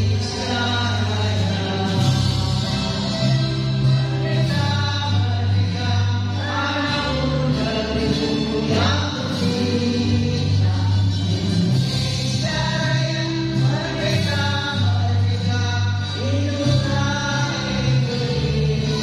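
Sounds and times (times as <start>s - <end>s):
musical accompaniment: 0.0s - 19.0s.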